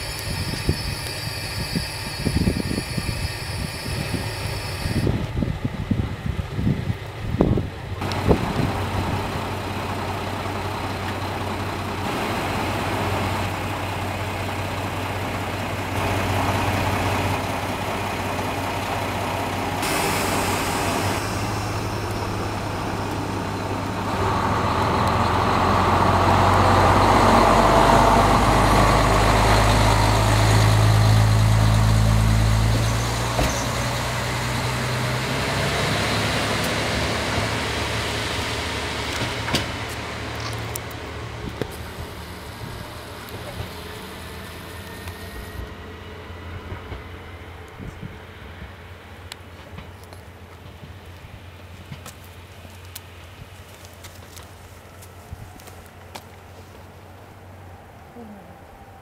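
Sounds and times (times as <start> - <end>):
diesel railcar engine: 0.0 - 59.0.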